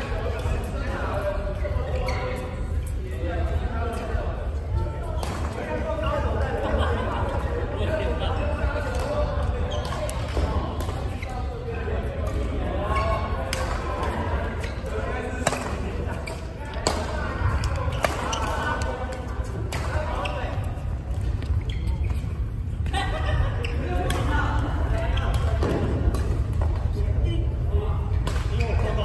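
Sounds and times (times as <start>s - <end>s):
players chattering: 0.0s - 29.0s
rackets smacking shuttlecock: 15.4s - 15.8s, 16.7s - 20.0s, 24.0s - 24.3s, 28.1s - 28.8s.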